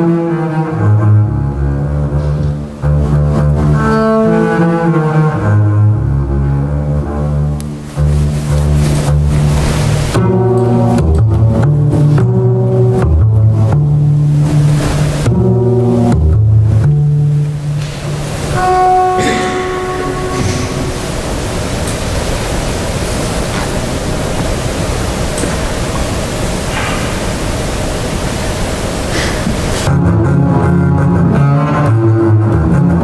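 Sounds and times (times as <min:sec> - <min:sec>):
bowed double bass: 0:00.0 - 0:33.0
pitchless bow noise: 0:00.0 - 0:33.0.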